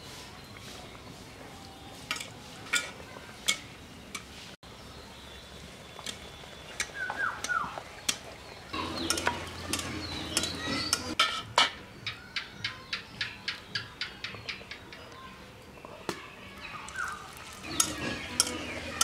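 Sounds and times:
frying in hot oil sizzling: 5.3 - 11.4, 16.8 - 19.0
metal spatula scraping pan: 8.8 - 11.6, 17.6 - 19.0.

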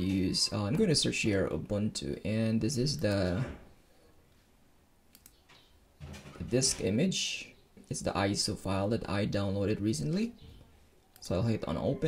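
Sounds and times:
faint computer mouse clicks: 5.1 - 5.4.

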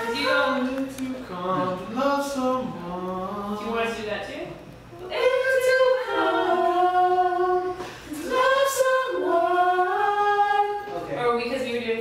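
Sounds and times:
a cappella gospel group singing: 0.0 - 3.8, 4.9 - 11.2.

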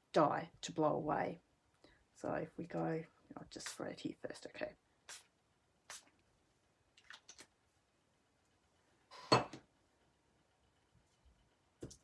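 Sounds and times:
spray bottle bursts: 5.1 - 5.3, 5.9 - 6.1.

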